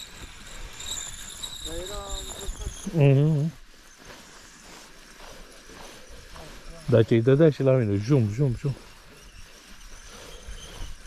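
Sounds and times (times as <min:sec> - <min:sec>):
man speaking: 0:06.8 - 0:08.8.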